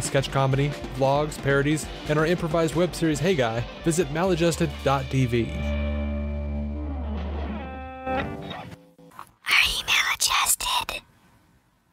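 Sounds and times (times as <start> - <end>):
person whispering: 9.4 - 11.0.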